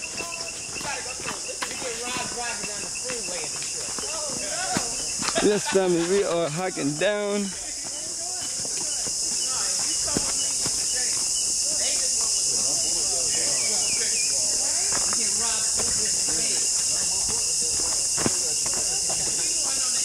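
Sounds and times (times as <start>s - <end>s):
faint voices: 0.0s - 20.0s
insect chorus drone: 0.0s - 20.0s.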